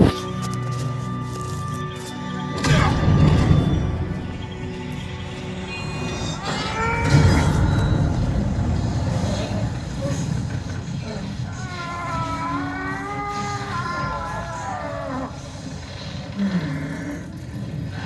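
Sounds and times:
crackling lightning: 7.0s - 12.7s.

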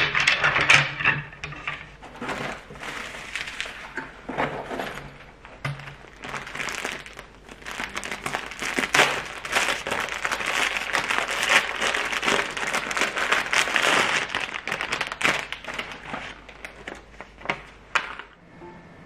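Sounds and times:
packaging crinkling: 2.0s - 18.4s.

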